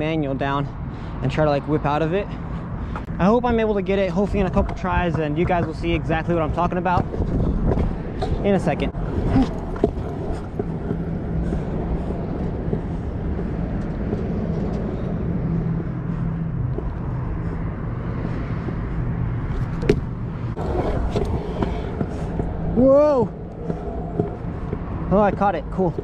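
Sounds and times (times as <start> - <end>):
scooter wheels rolling on concrete: 3.0 - 17.6, 19.4 - 26.0.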